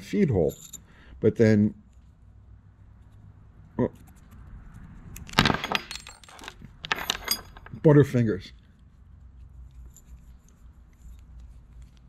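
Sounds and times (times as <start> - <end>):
metal parts clattering on wood: 5.4 - 7.9.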